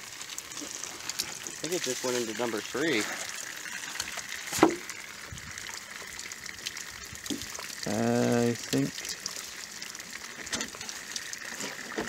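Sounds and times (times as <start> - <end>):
water trickling from jugs: 0.0 - 12.0.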